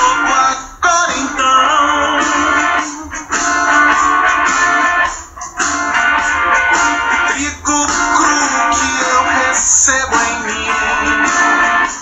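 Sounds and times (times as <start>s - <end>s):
band song with strummed guitar: 0.0s - 12.0s.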